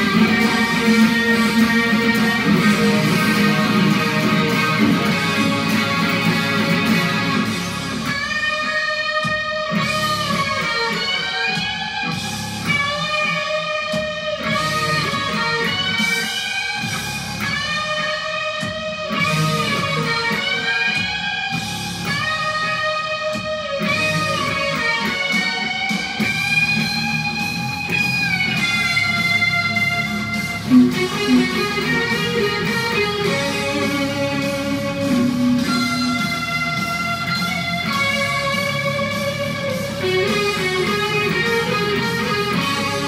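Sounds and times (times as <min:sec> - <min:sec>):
distorted electric guitar solo: 0:00.0 - 0:43.0.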